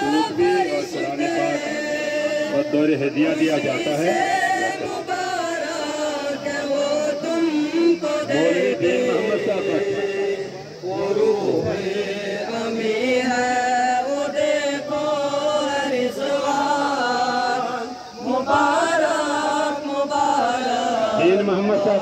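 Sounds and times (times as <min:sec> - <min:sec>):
man chanting into a microphone: 0:00.0 - 0:05.0, 0:07.6 - 0:18.6, 0:20.4 - 0:22.0.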